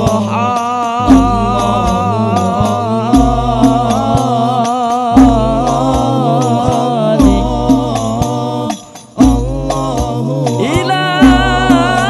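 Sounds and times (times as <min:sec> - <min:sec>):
hand-struck frame drums: 0:01.0 - 0:04.3, 0:05.2 - 0:08.4, 0:09.1 - 0:10.1, 0:11.2 - 0:12.0
voices chanting wavering notes: 0:01.0 - 0:12.0
deep drum boom: 0:01.1 - 0:04.3, 0:05.2 - 0:06.2, 0:07.2 - 0:08.3, 0:09.2 - 0:10.1, 0:11.2 - 0:12.0.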